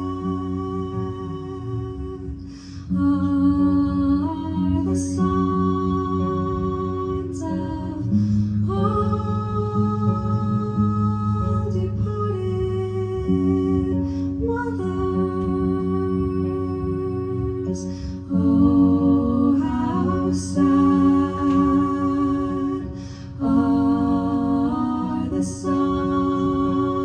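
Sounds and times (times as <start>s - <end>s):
electric guitar: 0.0s - 27.0s
person singing long held notes: 0.0s - 27.0s.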